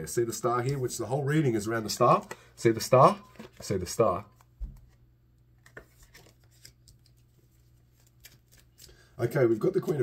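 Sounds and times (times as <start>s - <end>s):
cards being handled: 1.8s - 5.0s, 5.6s - 10.0s.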